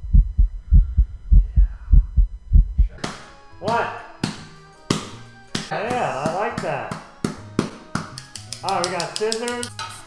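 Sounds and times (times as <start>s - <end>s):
deep thumps in pairs: 0.0s - 3.0s.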